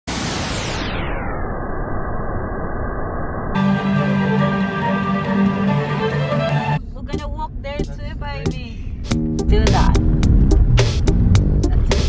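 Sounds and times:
music with sustained tones: 3.6 - 6.8.

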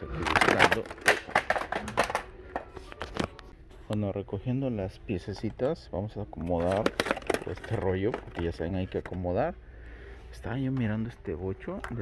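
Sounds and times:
plastic packs clacking and rattling: 0.0 - 3.4, 5.2 - 9.5.

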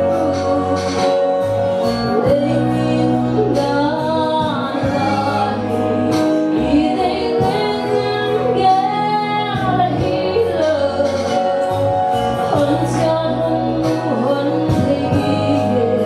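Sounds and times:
instrumental accompaniment with bass: 0.0 - 16.0
woman singing gospel song: 2.1 - 11.8, 12.5 - 16.0.

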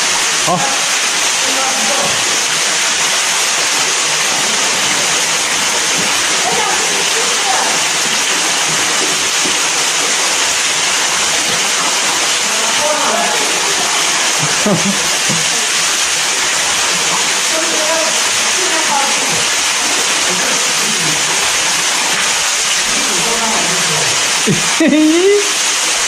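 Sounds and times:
waterfall rushing: 0.0 - 26.0.

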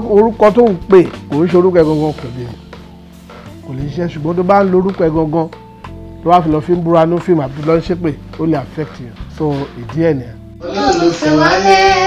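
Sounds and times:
man speaking: 0.0 - 2.7, 3.6 - 5.6, 6.2 - 10.4.

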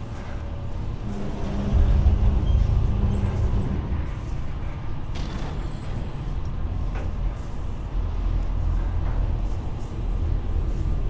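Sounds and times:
elevator mechanical rumble and hum: 0.0 - 11.0.

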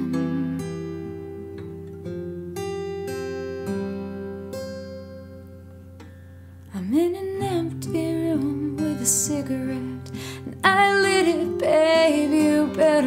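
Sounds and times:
acoustic guitar chords: 0.0 - 13.0.

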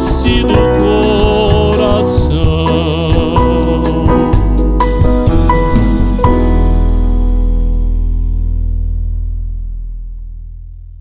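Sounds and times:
deep bass note: 0.0 - 11.0.

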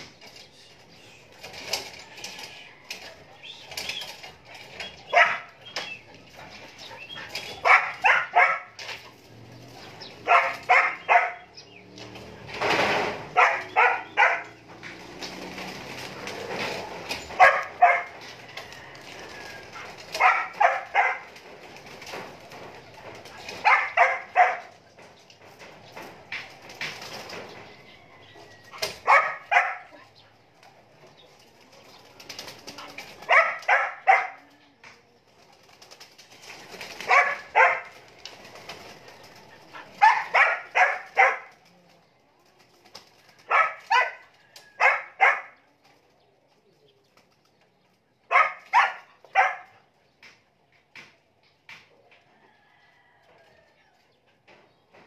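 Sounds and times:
pigeons cooing: 0.0 - 45.7.

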